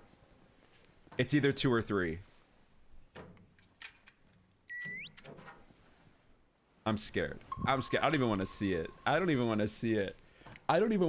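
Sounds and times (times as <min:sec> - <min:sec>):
comic rising whistle tone: 0:04.7 - 0:05.2.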